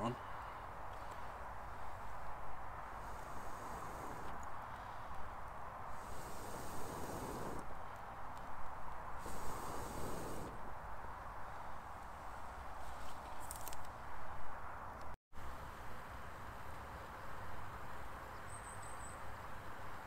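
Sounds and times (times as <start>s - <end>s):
steady hiss: 0.0s - 13.8s
puffs of air through blow tube: 2.9s - 5.2s, 5.9s - 7.7s, 9.2s - 10.7s.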